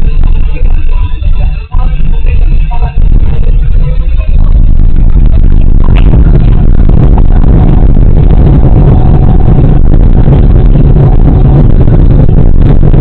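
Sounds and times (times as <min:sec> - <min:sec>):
faint steady whine: 0:00.0 - 0:13.0
jet engines roaring: 0:00.0 - 0:13.0
runway rumble: 0:00.0 - 0:13.0.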